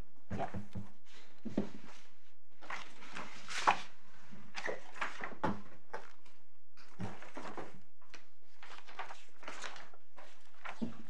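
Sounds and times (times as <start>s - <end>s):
paper rustling: 1.1s - 11.0s.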